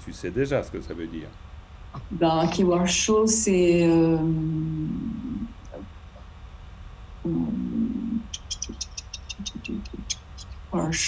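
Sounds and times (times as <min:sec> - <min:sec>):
man saying euh: 0:00.0 - 0:01.3
low murmur: 0:00.0 - 0:01.4, 0:02.0 - 0:06.2, 0:07.3 - 0:11.0.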